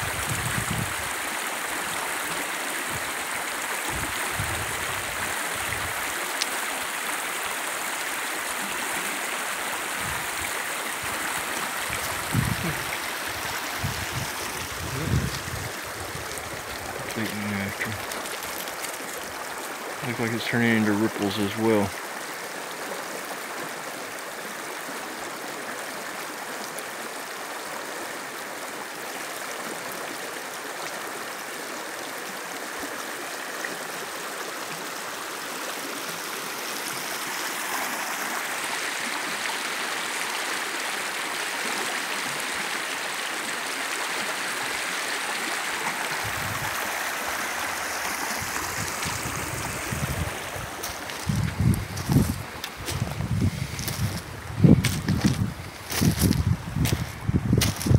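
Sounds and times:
creek water rushing: 0:00.0 - 0:57.9.

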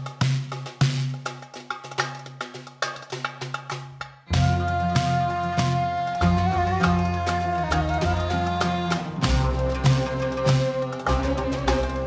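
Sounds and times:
hand drums: 0:00.0 - 0:12.0.

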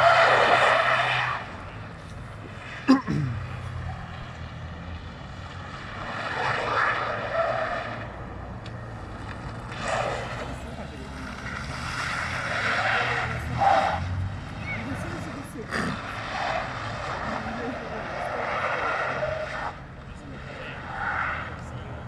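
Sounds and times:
car engine revving: 0:00.0 - 0:22.0
tyres skidding on asphalt: 0:00.0 - 0:22.0.

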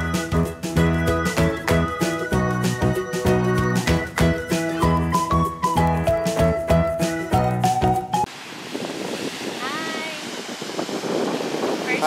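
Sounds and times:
music track: 0:00.0 - 0:08.3
beach surf: 0:08.2 - 0:12.0
wind on microphone: 0:08.3 - 0:12.0.

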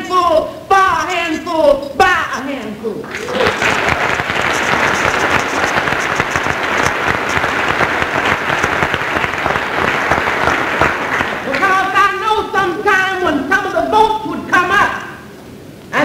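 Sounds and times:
audience applauding: 0:03.1 - 0:12.2.

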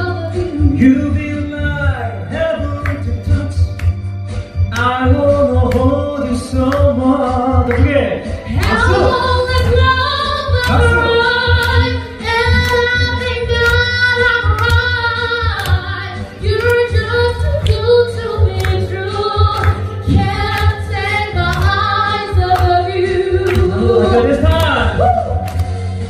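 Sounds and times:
woman singing into microphone: 0:08.6 - 0:24.4.

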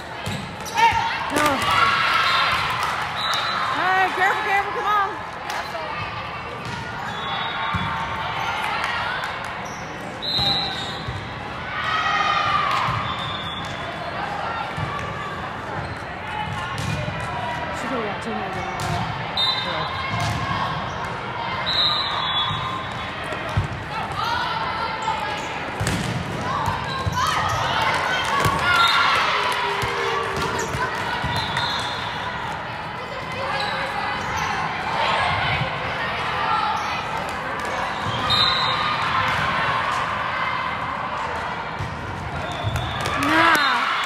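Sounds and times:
players and spectators chattering: 0:00.0 - 0:44.0.

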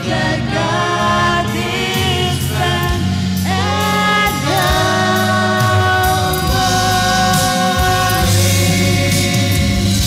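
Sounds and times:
group singing a hymn: 0:00.0 - 0:10.0.

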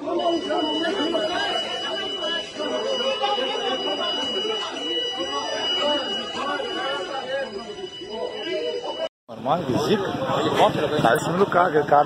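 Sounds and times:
high-pitched electronic alarm tone: 0:00.0 - 0:09.1.

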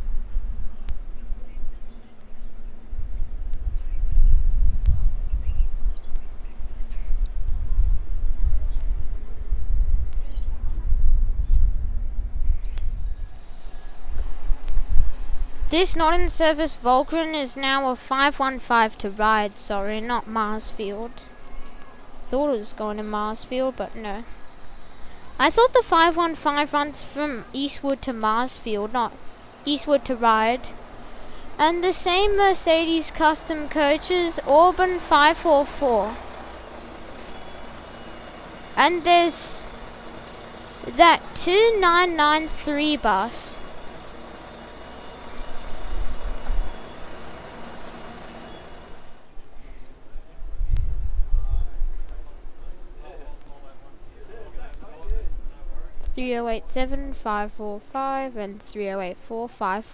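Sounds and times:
road noise: 0:00.0 - 0:59.9
bus diesel engine passing: 0:13.0 - 0:50.2.

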